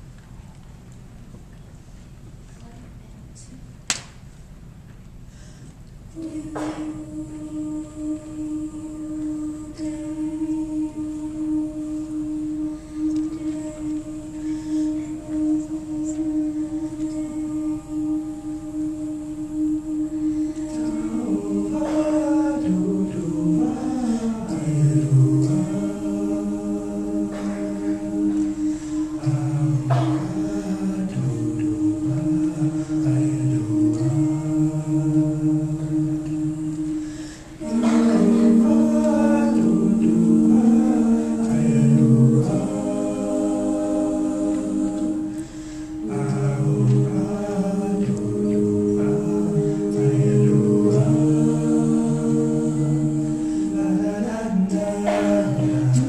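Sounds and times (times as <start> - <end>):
low voices singing bass line: 6.0 - 56.0.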